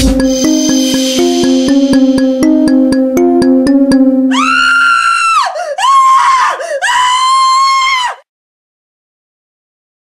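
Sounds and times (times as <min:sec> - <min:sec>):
high-pitched screaming: 0:04.3 - 0:08.0.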